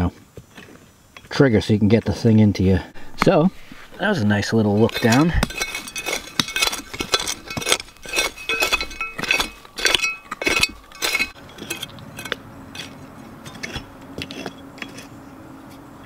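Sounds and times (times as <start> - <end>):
trowel digging hard dirt: 3.0 - 15.2
trowel blade scraping and clinking: 3.9 - 15.2.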